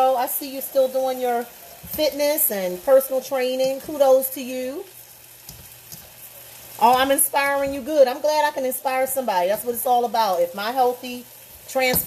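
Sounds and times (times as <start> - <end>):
cabbage sizzling in a hot pan: 0.0 - 12.0
spatula turning food in pan: 0.0 - 12.0.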